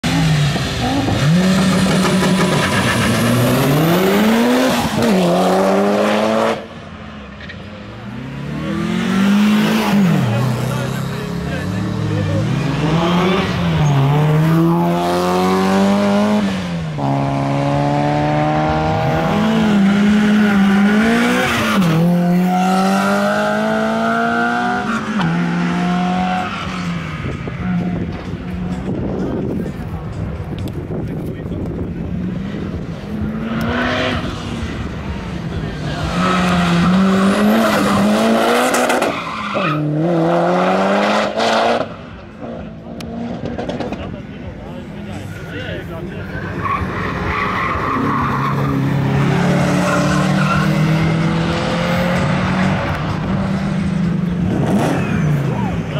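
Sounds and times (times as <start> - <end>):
racing car engines revving: 0.0 - 55.9.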